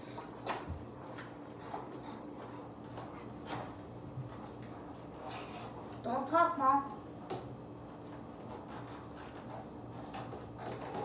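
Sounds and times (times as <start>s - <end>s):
cardboard flaps scraping and tapping: 7.3s - 11.0s.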